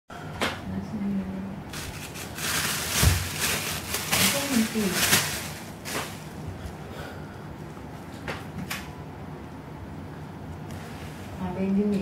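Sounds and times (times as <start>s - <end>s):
plastic bag rustling: 1.7s - 6.7s.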